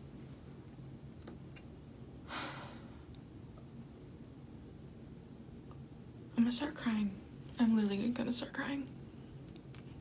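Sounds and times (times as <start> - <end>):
woman's breathy exhale: 2.3 - 3.0.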